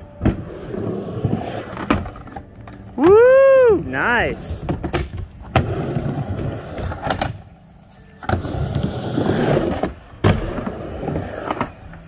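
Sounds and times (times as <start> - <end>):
skateboard wheels rolling: 0.0 - 12.0.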